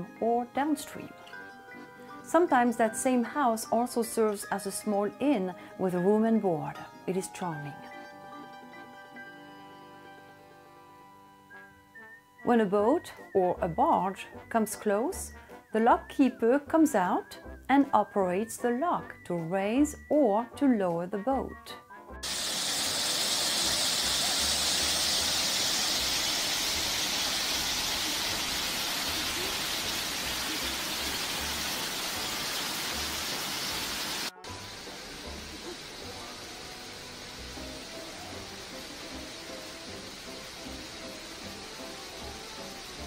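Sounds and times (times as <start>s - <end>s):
faint music: 0.0s - 21.9s, 23.5s - 33.6s, 34.3s - 43.0s.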